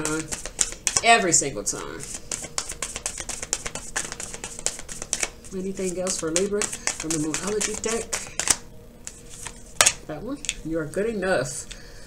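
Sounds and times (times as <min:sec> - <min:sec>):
cards being shuffled: 0:00.0 - 0:01.1, 0:02.0 - 0:10.6
card snap: 0:02.4 - 0:05.4, 0:06.0 - 0:08.6, 0:09.8 - 0:10.6.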